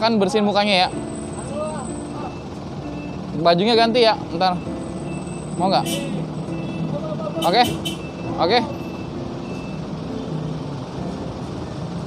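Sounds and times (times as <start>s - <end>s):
street traffic: 0.0s - 12.0s
vehicle engine droning: 0.0s - 12.0s.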